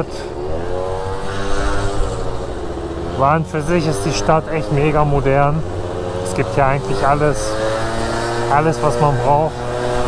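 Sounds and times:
scooter engine pulling away: 0.0s - 10.0s.

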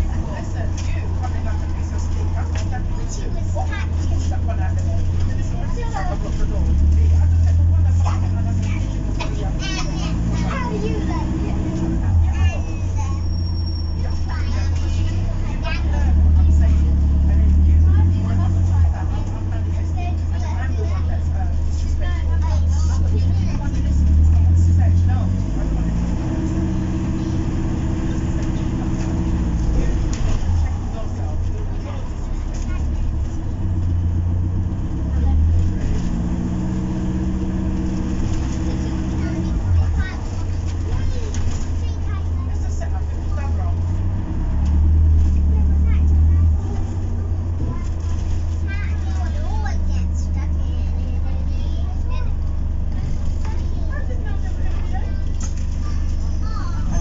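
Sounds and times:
bus engine rumble and whine: 0.0s - 57.0s.

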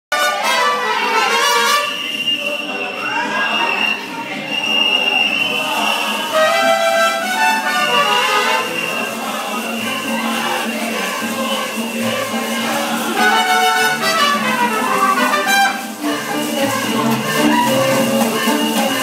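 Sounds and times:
music playing: 0.1s - 19.0s
people's voices: 0.1s - 19.0s.

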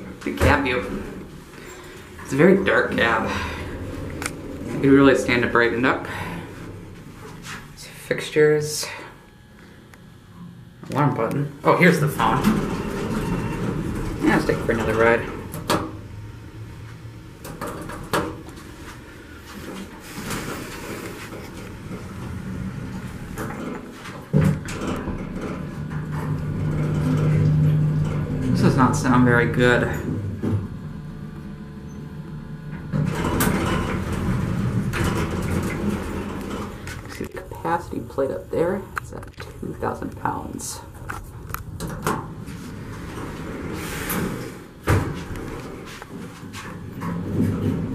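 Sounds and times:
elevator rumbling and rattling: 0.0s - 9.0s, 10.4s - 47.9s
faint steady hum: 0.0s - 47.9s
person talking: 2.2s - 3.7s, 4.7s - 6.5s, 10.9s - 12.7s, 14.2s - 15.4s, 28.4s - 30.1s, 37.0s - 41.0s.

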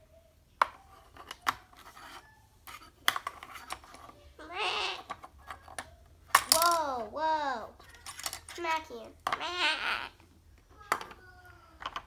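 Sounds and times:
plastic toy figures clattering: 5.1s - 6.9s, 7.8s - 9.4s, 11.8s - 12.0s.

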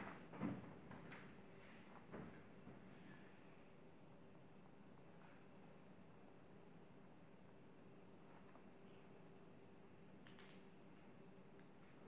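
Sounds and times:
cricket trill: 0.0s - 12.0s.

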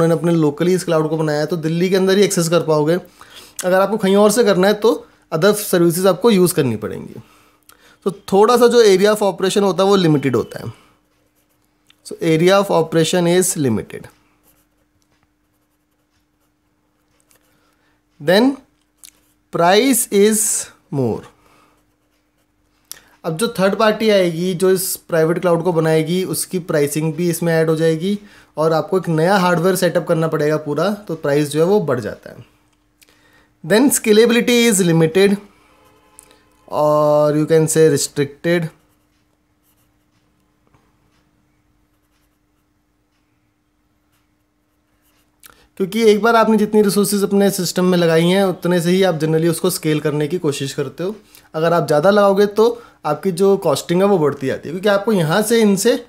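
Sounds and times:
faint steady hum: 0.0s - 56.0s
marker pen scratching on paper: 11.0s - 17.6s, 21.6s - 24.4s, 38.6s - 40.3s, 41.9s - 42.8s
marker pen writing on paper: 11.1s - 11.7s, 14.4s - 17.6s, 21.8s - 22.8s.

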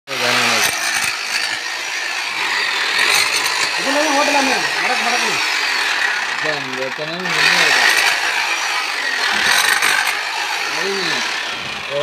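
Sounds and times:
demolition hammer chiselling soil: 0.1s - 12.0s
chisel bit knocking on stones: 0.6s - 1.7s, 2.4s - 3.8s, 9.3s - 10.2s.

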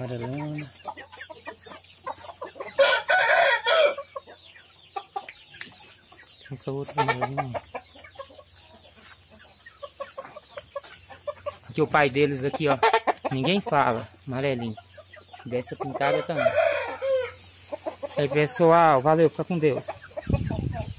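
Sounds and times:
chickens clucking: 0.0s - 20.9s
rooster crowing: 2.8s - 4.0s, 16.0s - 17.4s.

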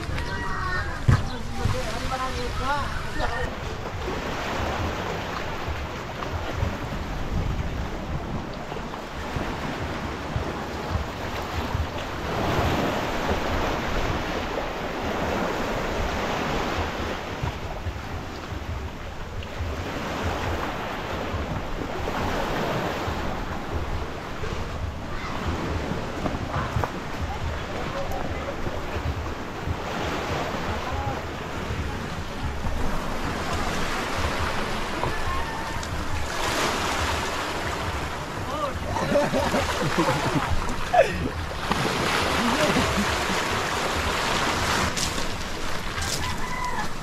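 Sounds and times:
waves washing onto rocky shore: 0.0s - 47.0s
wind rumble on microphone: 0.0s - 47.0s.

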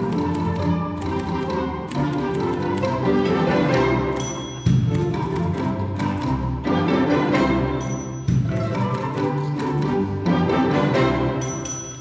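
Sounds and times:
strings holding bowed notes: 0.0s - 11.9s.

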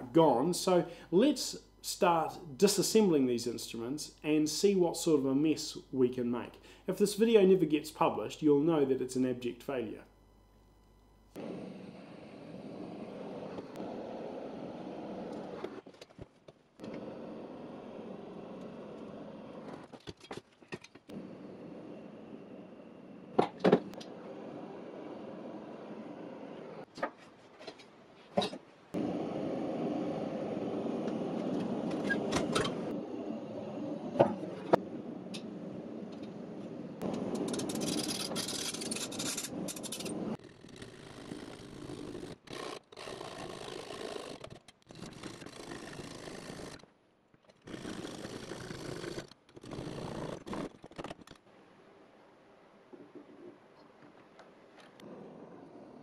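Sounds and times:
torch rushing: 11.4s - 16.0s, 16.8s - 20.1s, 21.1s - 26.9s, 28.9s - 46.8s.

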